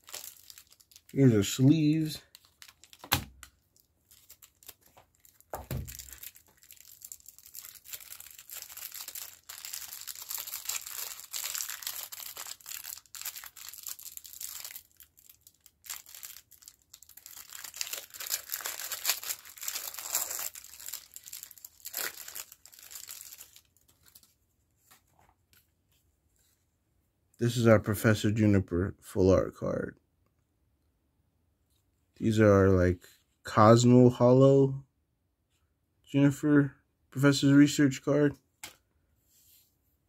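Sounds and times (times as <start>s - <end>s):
plastic wrap tearing and crinkling: 0.0s - 24.4s.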